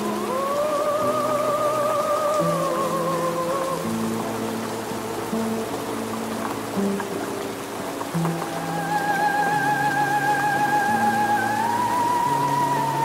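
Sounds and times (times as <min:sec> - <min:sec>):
wavering high tone with vibrato: 0:00.0 - 0:05.4, 0:08.4 - 0:13.0
rain hiss: 0:00.0 - 0:13.0.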